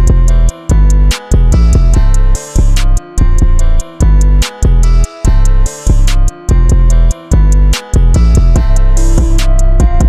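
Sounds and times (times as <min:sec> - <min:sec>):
heavy bass notes: 0:00.0 - 0:10.0
hi-hats: 0:00.0 - 0:10.0
melodic loop: 0:00.0 - 0:10.0.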